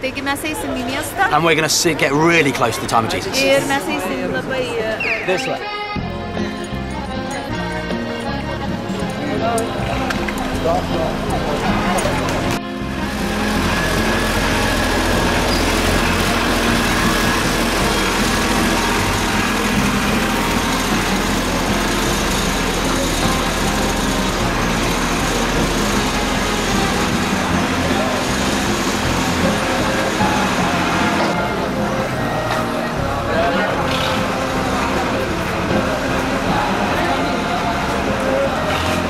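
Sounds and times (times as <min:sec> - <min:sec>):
crowd voices: 0:00.0 - 0:39.0
utility cart engine running: 0:00.0 - 0:39.0
music: 0:02.3 - 0:39.0.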